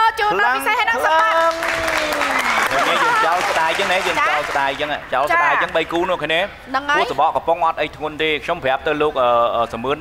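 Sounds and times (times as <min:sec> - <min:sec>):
applause: 0:01.2 - 0:05.0.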